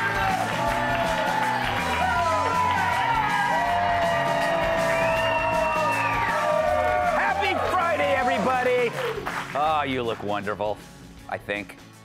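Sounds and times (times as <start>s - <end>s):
audience cheering and whooping: 0.0s - 9.3s
theme music playing: 0.0s - 12.0s.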